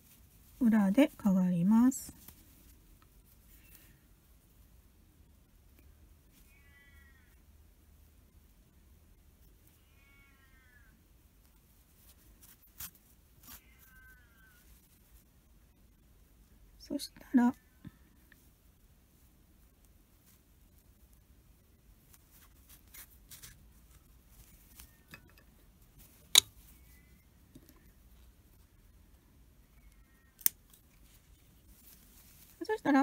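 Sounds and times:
scissors snipping yarn: 0:29.9 - 0:31.0.

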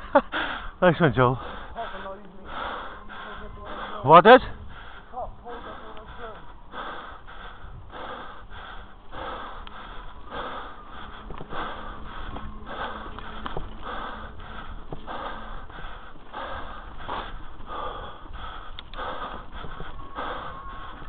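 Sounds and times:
heavy rhythmic breathing: 0:00.0 - 0:21.0
steady low rumble: 0:00.0 - 0:21.0
bike clicks: 0:08.3 - 0:21.0.

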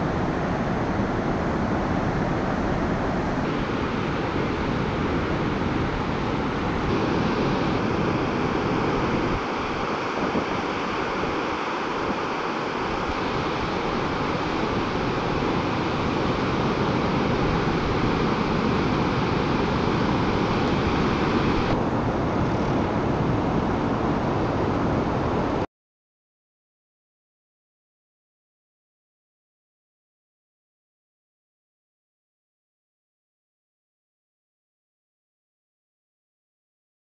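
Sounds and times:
ocean surf breaking: 0:00.0 - 0:25.6
wind buffeting microphone: 0:00.0 - 0:25.6.

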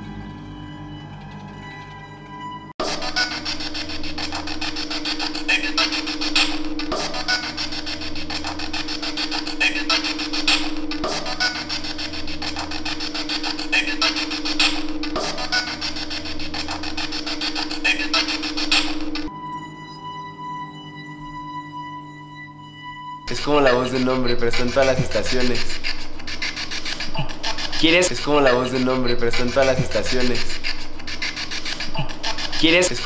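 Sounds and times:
radio static and fragments: 0:02.8 - 0:19.3, 0:23.3 - 0:33.0
steady hum: 0:02.8 - 0:33.0.

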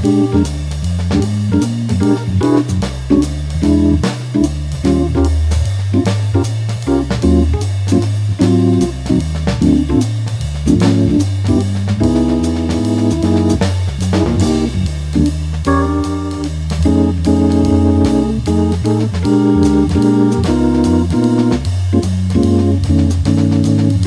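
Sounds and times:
drum and cymbal strokes: 0:00.0 - 0:24.0
organ bass line: 0:00.0 - 0:24.0
organ chords: 0:00.0 - 0:24.0.

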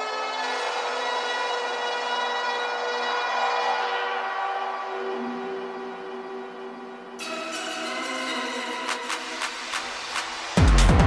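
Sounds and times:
sustained electronic synth chords: 0:00.0 - 0:11.0.

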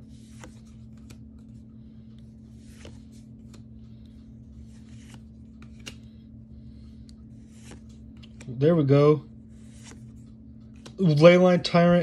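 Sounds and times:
cards sliding papery scrape: 0:00.0 - 0:01.6, 0:02.2 - 0:08.6, 0:09.5 - 0:11.0
steady low hum: 0:00.0 - 0:12.0.

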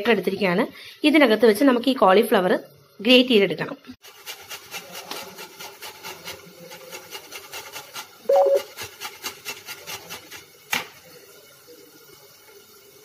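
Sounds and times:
cauliflower grated on metal grater: 0:04.0 - 0:11.0
brief hum: 0:08.3 - 0:08.6.

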